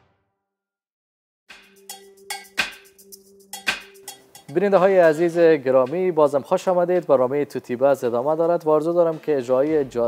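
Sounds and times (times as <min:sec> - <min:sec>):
sharp bright percussive strikes: 0:01.5 - 0:06.1.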